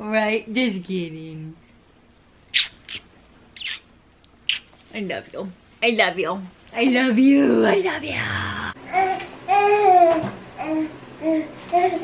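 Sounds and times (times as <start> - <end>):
wet lip smacking kisses: 2.5 - 3.8, 4.5 - 4.7.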